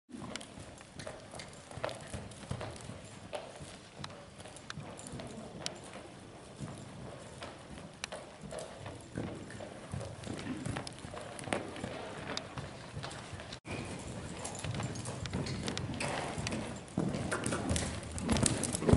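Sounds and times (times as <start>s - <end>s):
horse hoofbeats on sand: 0.1s - 18.9s.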